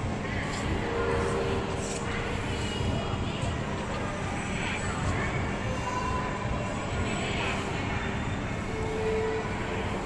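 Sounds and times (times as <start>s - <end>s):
indistinct crowd voices: 0.0s - 10.0s.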